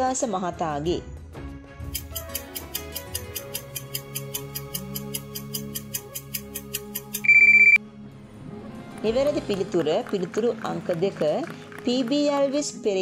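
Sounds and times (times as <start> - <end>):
soft background music: 0.0 - 13.0
clock-like ticks: 2.0 - 7.7
electronic beep: 7.2 - 7.8.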